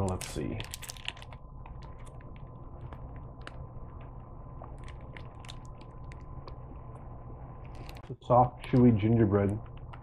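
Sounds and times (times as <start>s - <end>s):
plastic wrapper crinkling: 0.0s - 7.0s.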